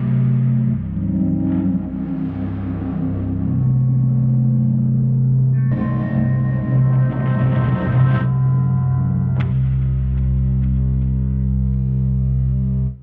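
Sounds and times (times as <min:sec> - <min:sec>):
ambient guitar pad chords: 0:00.0 - 0:13.0.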